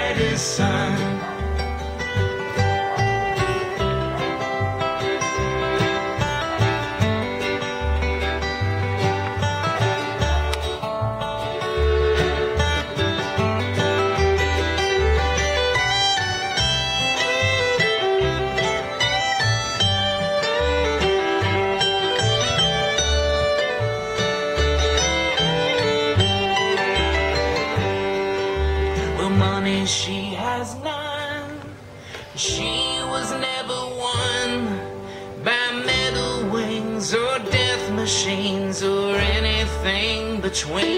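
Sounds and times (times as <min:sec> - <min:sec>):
person singing: 0:00.0 - 0:01.7, 0:28.8 - 0:40.9
fiddle melody: 0:00.0 - 0:40.9
mandolin: 0:00.0 - 0:40.9
plucked upright bass: 0:00.0 - 0:40.9
strummed acoustic guitar: 0:00.0 - 0:40.9.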